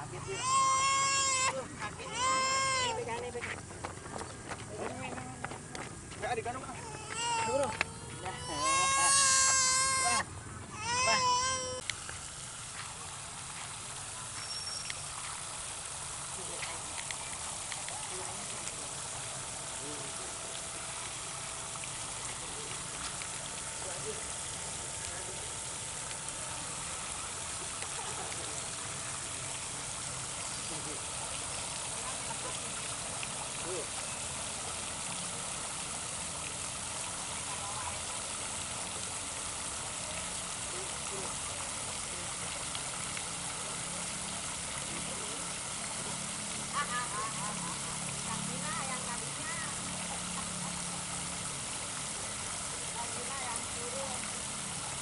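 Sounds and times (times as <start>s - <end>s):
fountain water splashing: 0.0s - 55.0s.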